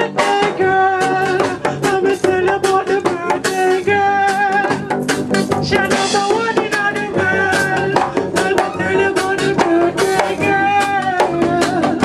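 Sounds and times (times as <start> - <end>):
drum kit beat: 0.0 - 12.0
guitar: 0.0 - 12.0
live band music: 0.0 - 12.0.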